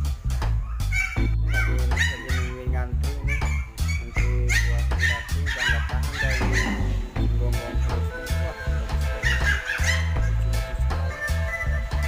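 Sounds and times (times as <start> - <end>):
song with pulsing bass beat: 0.0 - 12.0
person singing: 6.4 - 9.5, 10.2 - 12.0.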